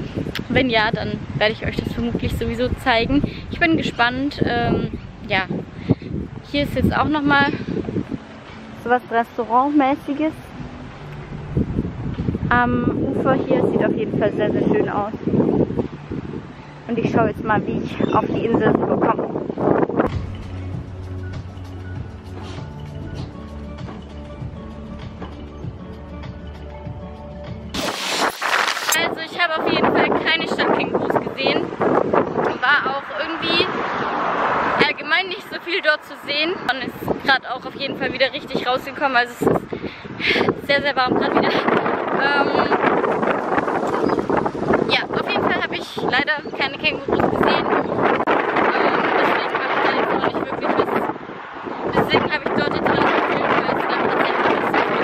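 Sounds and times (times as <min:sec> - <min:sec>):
wind buffeting microphone: 0:00.0 - 0:25.6, 0:27.7 - 0:55.0
music with steady beat: 0:20.1 - 0:28.9.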